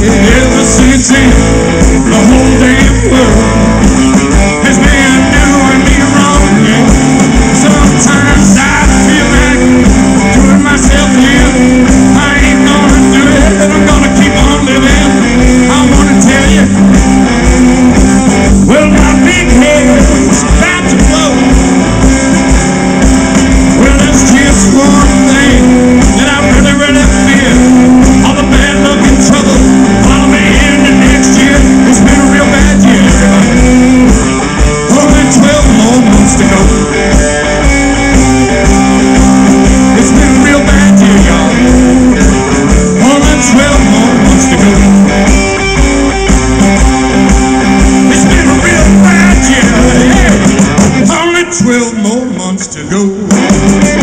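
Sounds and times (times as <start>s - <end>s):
person singing: 0.0s - 22.1s, 23.6s - 54.0s
drum kit beat: 0.0s - 52.5s, 53.1s - 54.0s
electric guitar: 0.0s - 54.0s.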